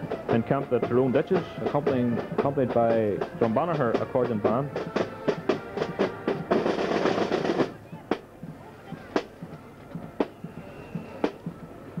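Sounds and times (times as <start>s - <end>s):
snare drum roll: 0.0s - 9.5s, 10.1s - 11.6s
single marching drum strokes: 0.0s - 12.0s.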